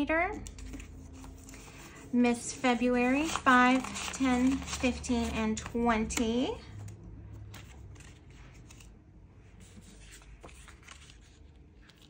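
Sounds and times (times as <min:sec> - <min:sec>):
paper rustling and ticking: 0:00.4 - 0:08.9, 0:09.7 - 0:12.0.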